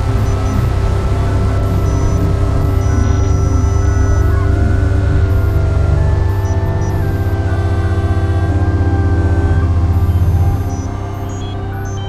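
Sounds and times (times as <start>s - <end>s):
long held tones: 0.0s - 12.0s
pulsing low drone: 0.0s - 12.0s.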